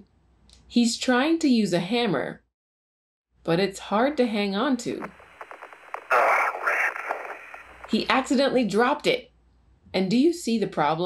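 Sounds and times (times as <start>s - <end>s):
crackly radio static: 4.8s - 8.6s
muffled radio transmission: 4.9s - 8.4s
faint clicks: 5.0s - 8.2s.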